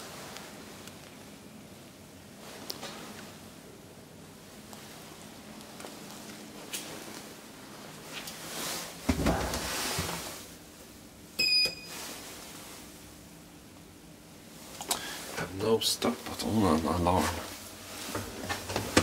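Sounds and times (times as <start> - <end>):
call button beep: 11.4 - 11.9.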